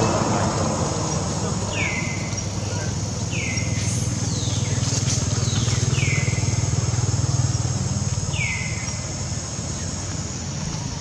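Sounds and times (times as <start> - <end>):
vehicle engine passing: 0.0 - 11.0
bird chirping: 1.0 - 11.0.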